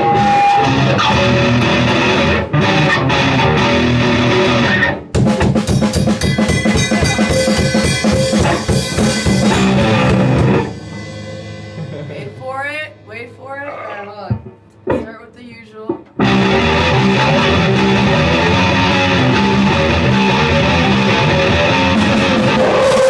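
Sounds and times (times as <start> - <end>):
live grindcore band: 0.0 - 12.4, 16.2 - 23.0
rapid drumming: 5.1 - 11.0, 16.0 - 23.0.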